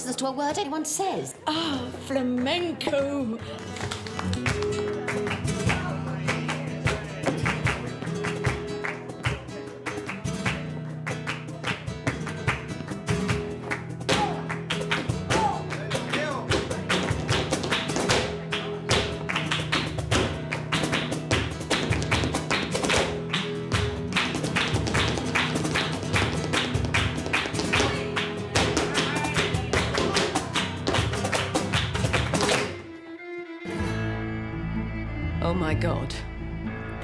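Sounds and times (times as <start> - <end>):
flamenco guitar music: 1.6 - 37.0
dancer's rapid footwork taps: 12.0 - 32.8.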